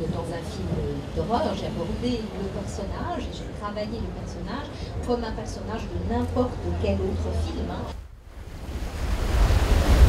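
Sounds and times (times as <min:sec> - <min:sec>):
rushing noise with deep rumble: 0:07.9 - 0:10.0.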